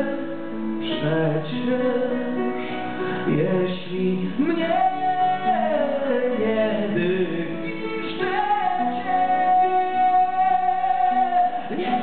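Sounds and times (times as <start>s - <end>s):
man singing a long high note: 3.2s - 12.0s.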